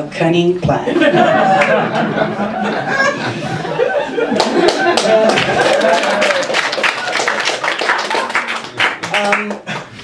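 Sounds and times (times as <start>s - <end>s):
audience laughing: 0.9s - 8.6s
audience clapping: 1.6s - 1.8s, 4.2s - 10.0s.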